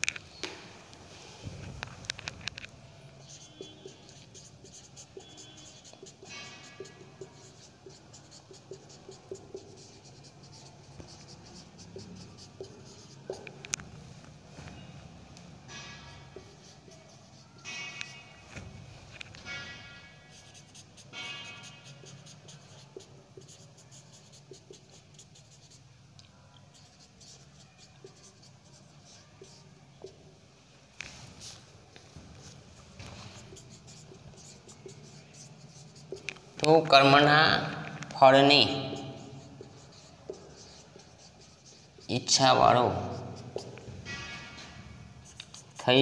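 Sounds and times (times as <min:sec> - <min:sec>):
marker rubbing on whiteboard: 0:01.3 - 0:14.9, 0:15.7 - 0:26.0, 0:26.6 - 0:30.4, 0:31.0 - 0:46.0
marker tip squeaking: 0:02.2 - 0:13.8, 0:15.7 - 0:18.4, 0:19.1 - 0:25.8, 0:26.7 - 0:30.2, 0:32.4 - 0:45.8.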